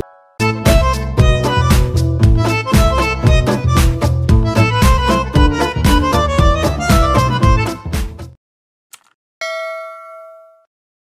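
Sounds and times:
background music: 0.0s - 8.4s
bright bell ding: 9.4s - 10.7s.

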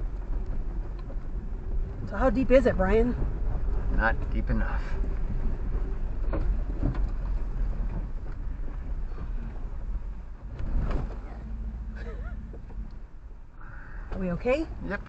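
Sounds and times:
suspension clunks over rocks: 0.0s - 15.0s
vehicle engine rumble: 0.0s - 15.0s.

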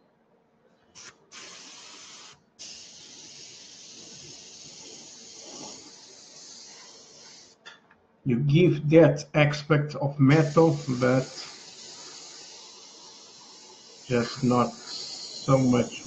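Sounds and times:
airbrush spraying: 1.0s - 7.6s, 10.2s - 16.0s.

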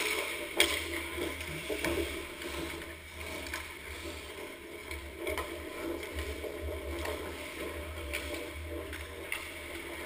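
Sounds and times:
skate blades scraping on ice: 0.0s - 10.0s.

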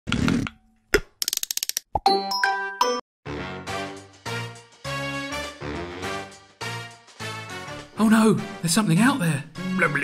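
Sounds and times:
children's theme music: 2.0s - 10.0s.

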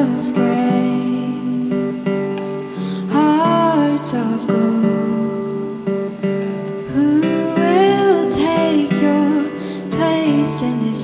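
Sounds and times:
acoustic guitar song: 0.0s - 11.0s
electric guitar: 0.0s - 11.0s.

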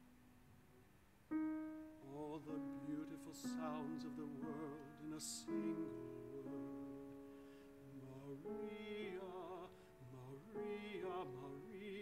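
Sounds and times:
piano chord ringing: 1.3s - 12.0s.

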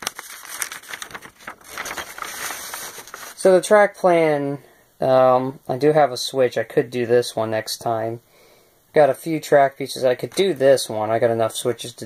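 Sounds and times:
paper rustling and crinkling: 0.0s - 3.4s.

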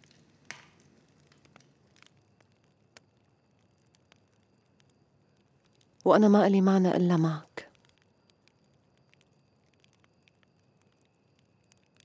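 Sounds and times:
wood fire crackling: 0.0s - 12.0s.

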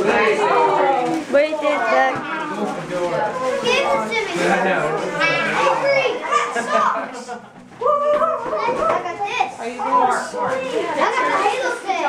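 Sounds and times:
children and adults chattering: 0.0s - 12.0s.

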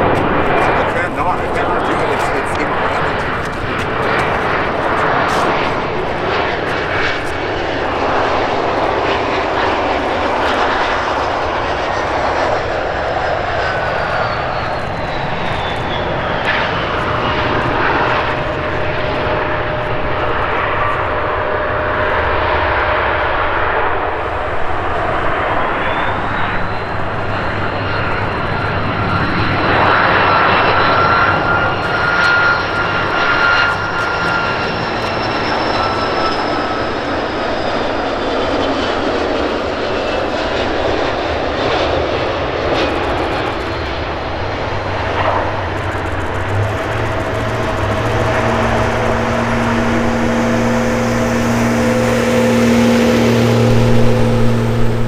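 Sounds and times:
jet landing with falling whine: 0.0s - 55.0s
jet on approach with rising whine: 0.0s - 55.0s.

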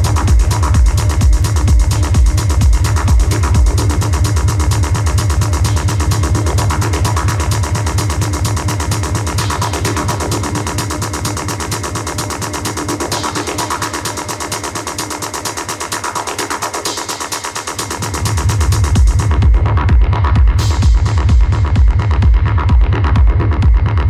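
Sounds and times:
electronic dance music: 0.0s - 24.0s.

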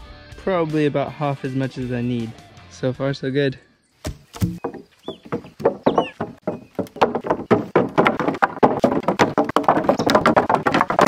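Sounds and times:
wooden posts knocking together: 4.0s - 11.0s.

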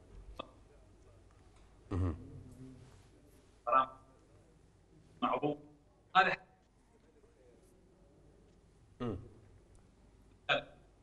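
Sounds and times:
man making short vocal sounds: 1.9s - 2.3s, 9.0s - 9.4s.

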